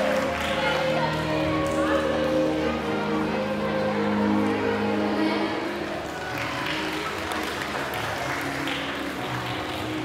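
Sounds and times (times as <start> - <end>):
audience applauding: 0.0 - 1.8, 6.0 - 10.0
faint music: 0.0 - 10.0.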